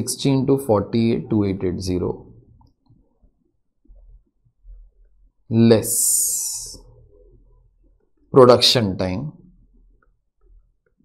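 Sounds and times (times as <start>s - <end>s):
person speaking: 5.5s - 7.4s.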